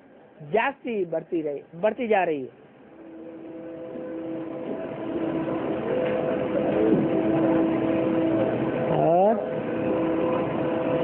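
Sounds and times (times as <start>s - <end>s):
steady hum of held tones: 0.0s - 11.0s
short rising pitched sound: 2.9s - 11.0s.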